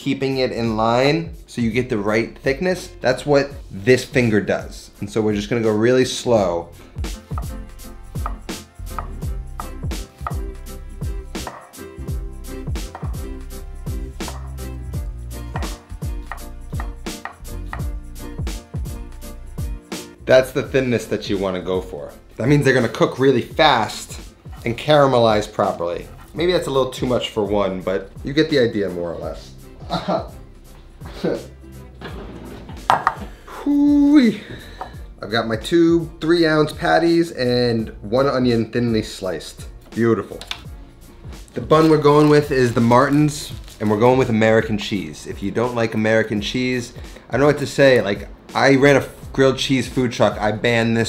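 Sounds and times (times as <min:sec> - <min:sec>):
background music with bass line: 0:00.0 - 0:51.0
knife tapping on cutting board: 0:07.3 - 0:07.6, 0:08.2 - 0:08.4, 0:09.0 - 0:10.5, 0:11.4 - 0:11.7, 0:12.9 - 0:13.2, 0:14.3 - 0:14.5, 0:15.5 - 0:17.9, 0:32.9 - 0:33.3.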